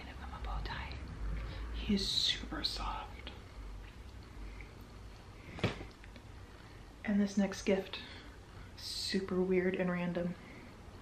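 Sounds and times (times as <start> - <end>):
woman whispering: 0.0 - 3.5
steady low hum: 0.0 - 11.0.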